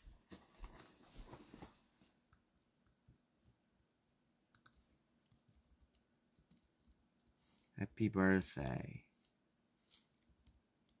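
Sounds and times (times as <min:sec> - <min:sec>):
person speaking: 0:07.4 - 0:09.2.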